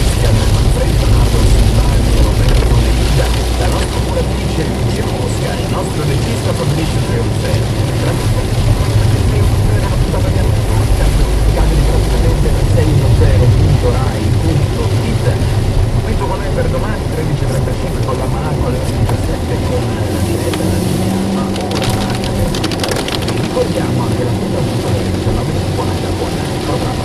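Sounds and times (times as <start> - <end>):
car engine and road drone: 0.0 - 27.0.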